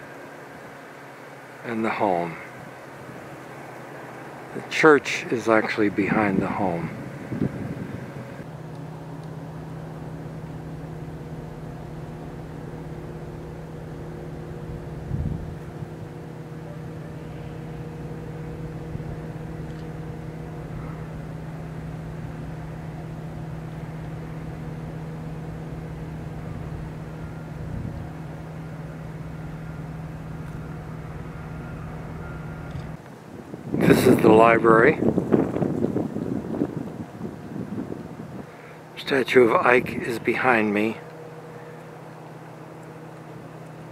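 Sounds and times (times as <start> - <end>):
motor humming: 0.0 - 43.9.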